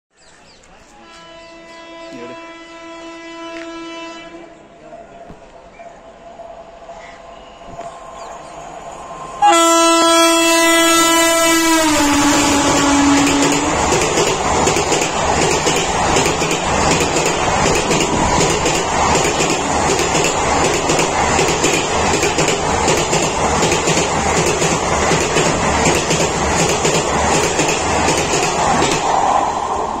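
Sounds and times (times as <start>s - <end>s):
train horn blast: 0.9s - 4.7s, 9.4s - 13.9s
train wheels clattering: 12.2s - 29.3s.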